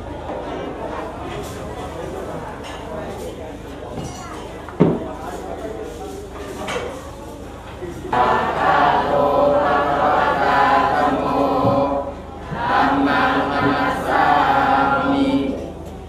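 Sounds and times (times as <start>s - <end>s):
congregation chanting in unison: 8.1s - 15.8s.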